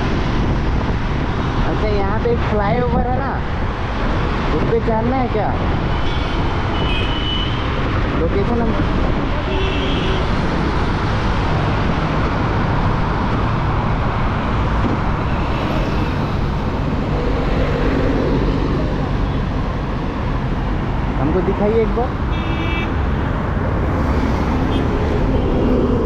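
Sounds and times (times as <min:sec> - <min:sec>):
wind rush over microphone: 0:00.0 - 0:06.9, 0:07.6 - 0:21.2, 0:23.2 - 0:26.0.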